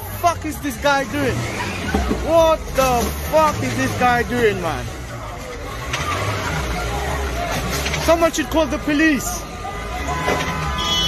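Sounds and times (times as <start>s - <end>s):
car engine rumble: 0.0s - 11.0s
faint voices: 0.0s - 11.0s.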